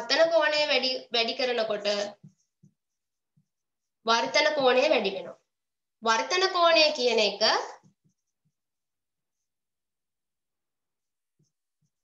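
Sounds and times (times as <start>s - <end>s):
person speaking: 0.0s - 2.4s, 4.0s - 5.4s
marker writing on whiteboard: 0.1s - 5.6s, 6.3s - 9.9s, 10.5s - 12.0s.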